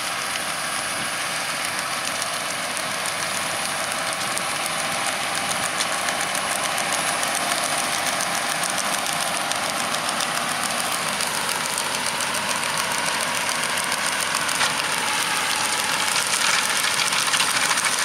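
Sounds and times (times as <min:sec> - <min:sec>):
tractor engine running: 0:00.0 - 0:18.0.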